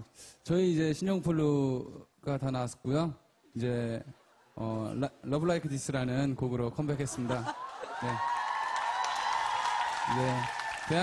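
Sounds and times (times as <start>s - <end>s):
audience clapping: 7.4s - 11.0s
audience cheering: 7.5s - 11.0s.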